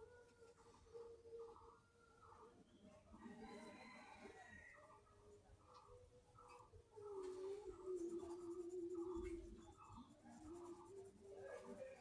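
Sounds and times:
pencil scratching on paper: 7.2s - 12.0s.

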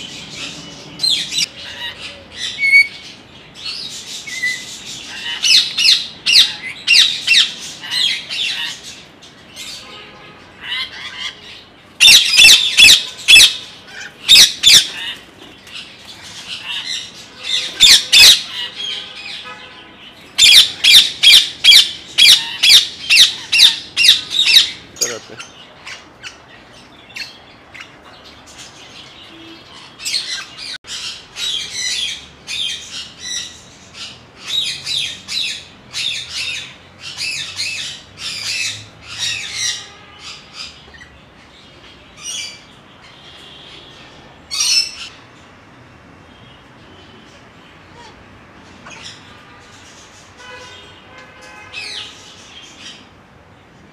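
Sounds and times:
parrots squawking: 0.2s - 9.9s, 10.6s - 19.5s, 20.2s - 28.7s, 29.3s - 41.2s, 48.8s - 50.0s.

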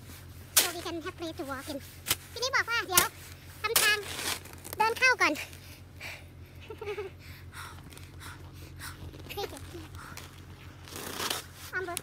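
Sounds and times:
woman laughing: 6.6s - 7.2s
breathy puffs of breath: 7.2s - 9.1s.

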